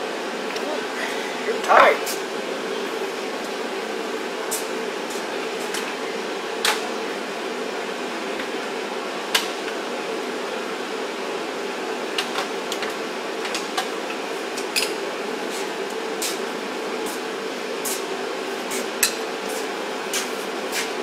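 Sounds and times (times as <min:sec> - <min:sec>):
workshop background hum: 0:00.0 - 0:21.0.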